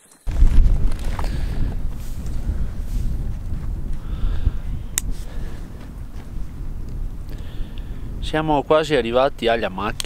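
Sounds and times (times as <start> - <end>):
wind buffeting microphone: 0.3 - 10.0.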